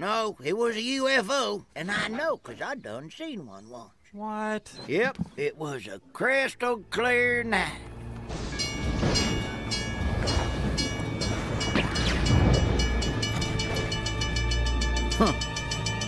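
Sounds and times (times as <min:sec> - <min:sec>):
railroad crossing bell ringing: 0:08.4 - 0:16.0.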